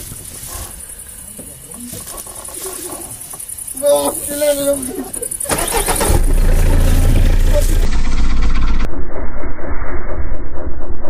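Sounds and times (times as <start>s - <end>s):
engine rumbling and throbbing: 4.8s - 11.0s.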